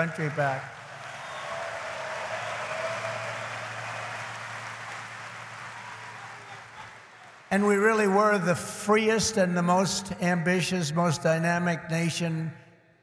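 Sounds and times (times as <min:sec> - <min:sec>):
audience applauding and cheering: 0:00.0 - 0:07.8.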